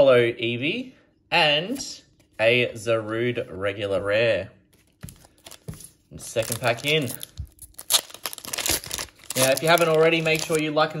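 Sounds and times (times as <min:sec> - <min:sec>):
foil wrapper tearing: 0:06.3 - 0:10.7.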